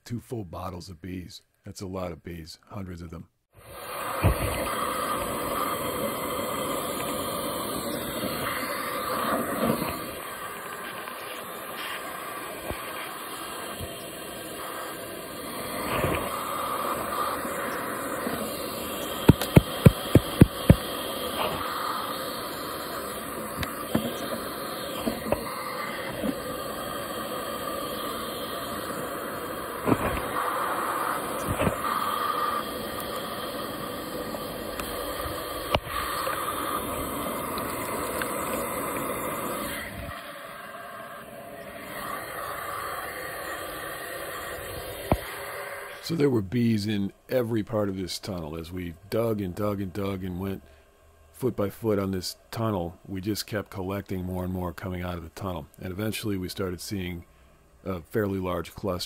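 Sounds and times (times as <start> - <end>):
vacuum suction hiss: 3.4 - 59.0
sharp clicks: 18.2 - 21.7.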